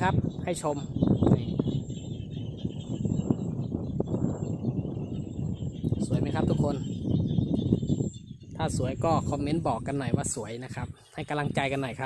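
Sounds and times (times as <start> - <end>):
chorus of frogs: 0.0 - 12.0
wind buffeting microphone: 0.0 - 12.0.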